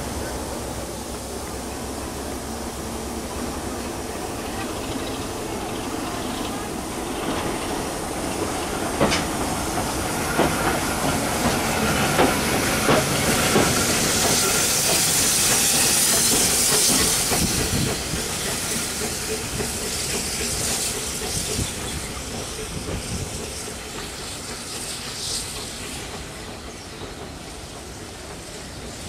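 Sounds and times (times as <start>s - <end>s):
steam engine hissing: 0.0s - 29.0s
train wheels knocking on rail joints: 3.3s - 29.0s.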